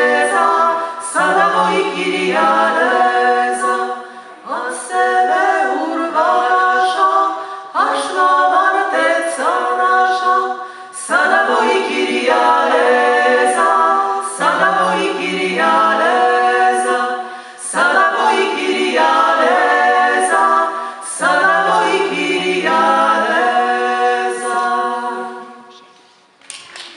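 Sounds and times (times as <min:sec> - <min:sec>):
women singing a cappella: 0:00.0 - 0:25.8
singers breathing: 0:00.7 - 0:01.1, 0:04.0 - 0:04.5, 0:07.3 - 0:07.8, 0:10.6 - 0:11.0, 0:17.2 - 0:17.7, 0:20.7 - 0:21.1.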